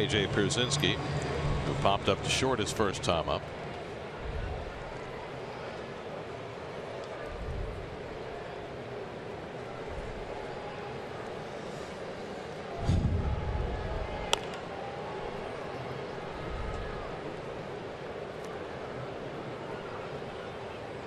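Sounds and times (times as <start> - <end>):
crowd chatter murmur: 0.0 - 21.0
low rumble: 12.8 - 14.3.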